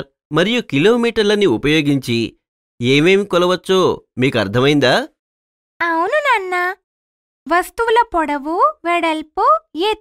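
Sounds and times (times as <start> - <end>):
girl speaking: 5.8 - 6.8, 7.5 - 10.0.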